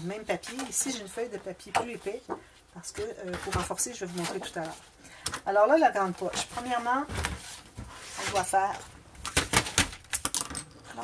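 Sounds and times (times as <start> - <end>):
paper rustling: 6.1 - 10.1.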